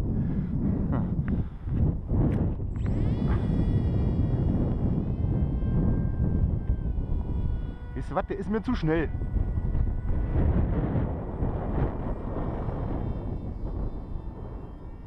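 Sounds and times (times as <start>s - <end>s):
electric motor and propeller whine: 0.0s - 15.0s
wind noise on microphone: 0.0s - 15.0s.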